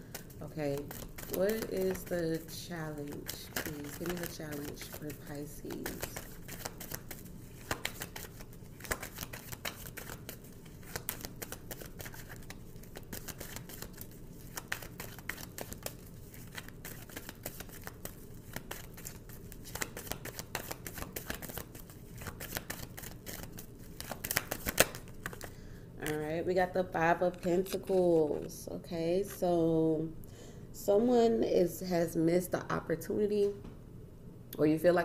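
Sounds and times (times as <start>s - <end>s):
cards being shuffled: 0.1s - 26.3s, 27.1s - 28.6s.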